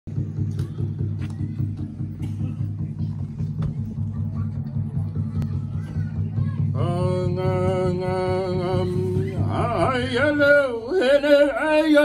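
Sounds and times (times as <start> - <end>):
water drums beaten rhythmically: 0.1 - 10.6.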